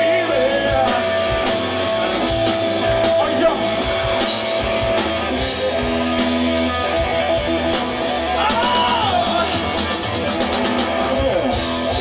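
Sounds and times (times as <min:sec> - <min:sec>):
bass and drums: 0:00.0 - 0:12.0.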